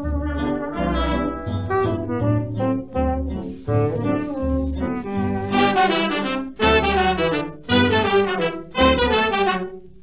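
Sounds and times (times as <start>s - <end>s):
dance band brass melody: 0.8s - 9.7s.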